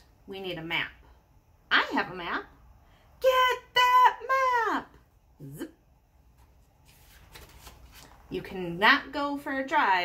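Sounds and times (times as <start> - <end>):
paper page rustling: 6.3 - 8.3.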